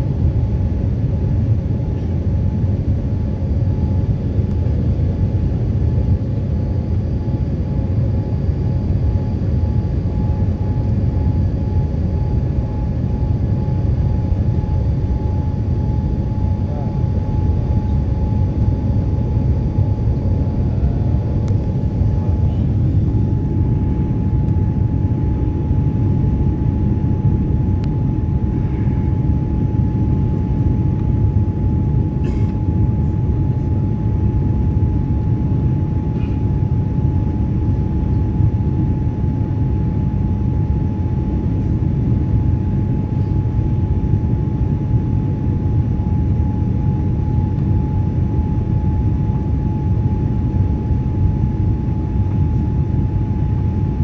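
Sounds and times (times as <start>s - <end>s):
jet engines and airflow rush: 0.0s - 54.0s
thin constant whine: 0.0s - 54.0s.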